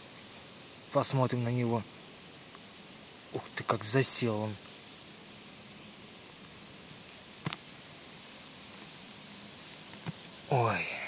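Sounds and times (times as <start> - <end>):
rustling of soil and leaf litter: 0.0 - 11.0.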